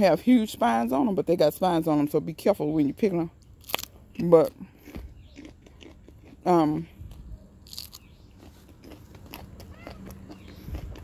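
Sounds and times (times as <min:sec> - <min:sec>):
crunchy chewing: 0:03.4 - 0:11.0.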